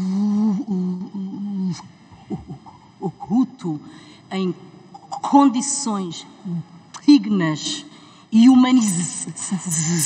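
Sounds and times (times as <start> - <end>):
woman stuttering speech: 3.0 - 10.0.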